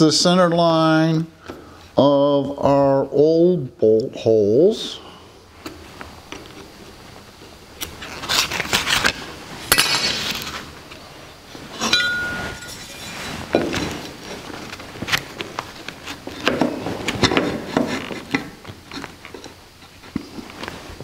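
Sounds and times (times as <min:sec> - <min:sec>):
metal scraping on workbench: 0:11.7 - 0:14.0
metal clink with ringing: 0:11.8 - 0:13.2.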